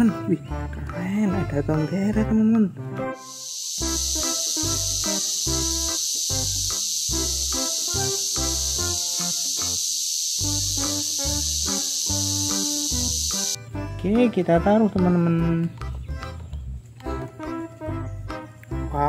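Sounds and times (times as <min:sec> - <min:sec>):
background music with beat: 0:02.6 - 0:09.7
cicada buzzing: 0:03.2 - 0:13.7.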